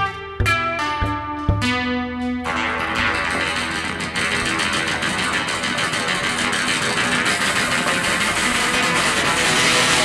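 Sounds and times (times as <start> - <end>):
upright double bass: 0.0 - 2.4
drum kit: 0.0 - 10.0
electric guitar: 0.0 - 10.0.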